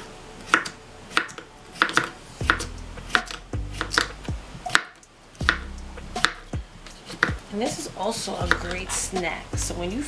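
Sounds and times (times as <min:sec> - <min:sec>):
blade tapping cutting board: 0:00.5 - 0:04.1, 0:04.7 - 0:06.4
knife slicing cucumber: 0:00.5 - 0:06.4.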